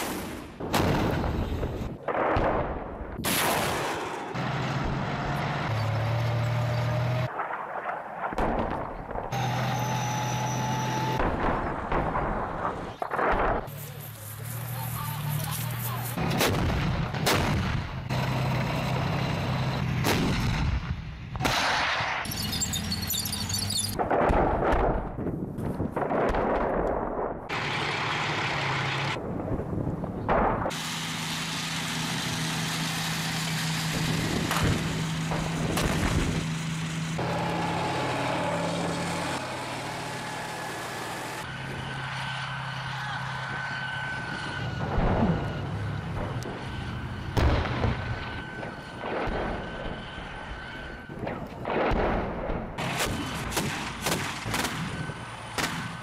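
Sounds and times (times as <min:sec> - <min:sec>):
artillery firing: 0:00.0 - 0:04.4, 0:07.3 - 0:09.4, 0:11.2 - 0:13.7, 0:16.2 - 0:18.2, 0:20.0 - 0:22.3, 0:24.0 - 0:27.5, 0:47.3 - 0:50.2, 0:51.2 - 0:56.0
gunshots: 0:00.0 - 0:04.4, 0:21.4 - 0:22.3, 0:51.2 - 0:56.0
tank engines droning: 0:00.0 - 0:25.3, 0:26.0 - 0:56.0.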